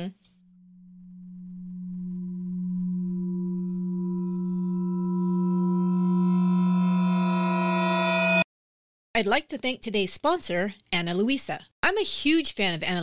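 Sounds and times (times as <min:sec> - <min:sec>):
low electronic drone tone: 0:00.4 - 0:08.4.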